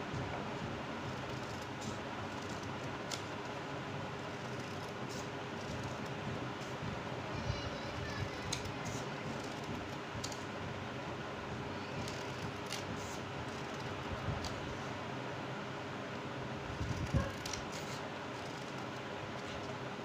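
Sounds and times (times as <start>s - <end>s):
scissors snipping paper: 1.2s - 3.5s, 12.0s - 14.6s, 16.8s - 19.8s.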